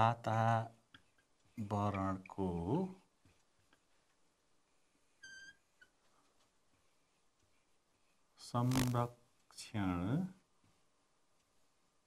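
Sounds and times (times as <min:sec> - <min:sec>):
marker squeaking on whiteboard: 0:00.9 - 0:01.6, 0:05.0 - 0:09.1.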